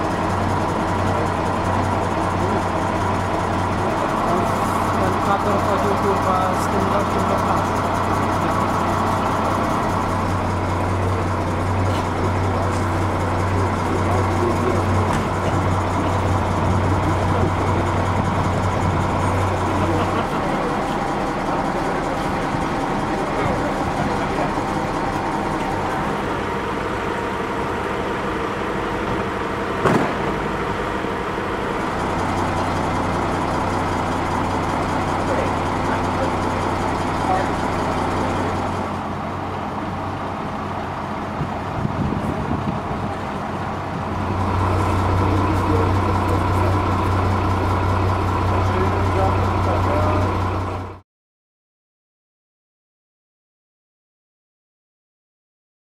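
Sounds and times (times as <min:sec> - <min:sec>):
indistinct voices: 0:00.0 - 0:27.8, 0:31.4 - 0:39.7, 0:43.2 - 0:50.9
vehicle engine idling: 0:00.0 - 0:51.0
sharp knock: 0:29.8 - 0:30.4.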